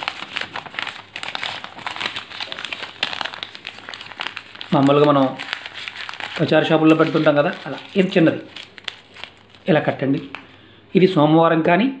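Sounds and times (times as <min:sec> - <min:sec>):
paper folding and crinkling: 0:00.0 - 0:10.6.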